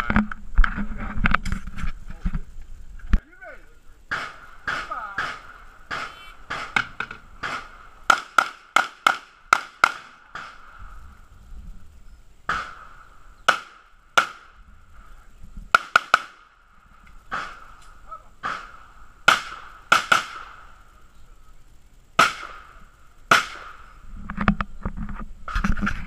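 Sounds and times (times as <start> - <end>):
handgun shots: 4.1 - 10.6, 12.5 - 12.9, 23.3 - 23.8.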